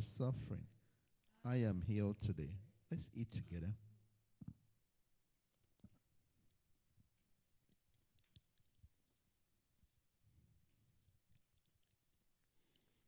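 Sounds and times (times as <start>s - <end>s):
faint clicks: 7.2s - 9.2s, 11.0s - 13.0s.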